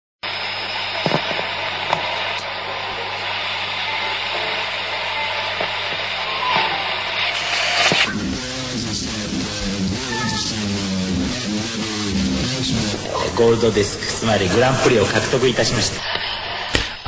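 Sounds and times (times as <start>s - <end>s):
low hum: 0.2s - 15.2s
static hiss: 0.2s - 16.2s
faint tone: 2.7s - 8.1s.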